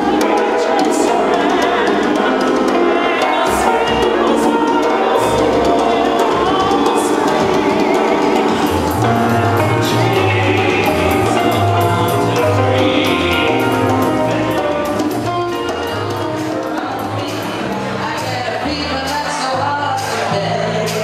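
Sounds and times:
bass line: 0.0s - 21.0s
keyboard: 0.0s - 21.0s
person singing with vibrato: 0.0s - 21.0s.

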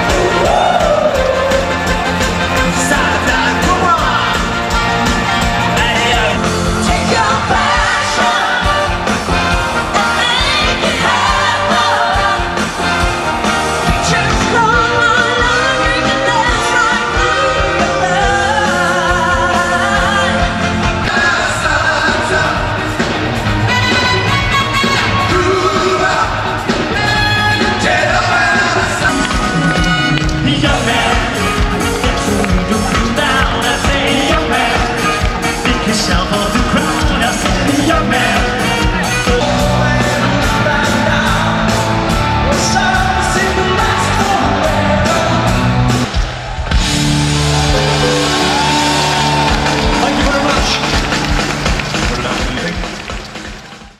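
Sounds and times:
person singing: 0.0s - 4.6s, 13.8s - 22.9s, 25.0s - 45.8s
live band playing pop music: 0.0s - 53.9s
steady drum beat: 0.0s - 53.9s.

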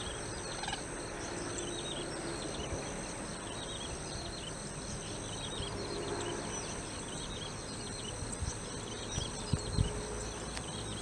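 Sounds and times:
small birds chirping: 0.0s - 11.0s
steady high-pitched whine: 0.0s - 11.0s.

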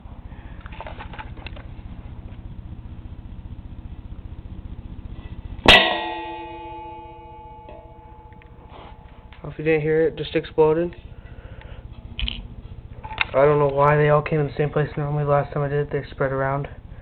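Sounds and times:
low steady hum: 0.0s - 17.0s
sharp bang: 5.6s - 9.2s
metal pan ringing: 5.7s - 9.0s.

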